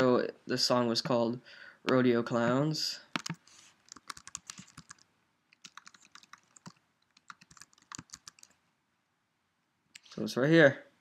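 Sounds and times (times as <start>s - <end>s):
typing on computer keyboard: 3.2s - 8.6s.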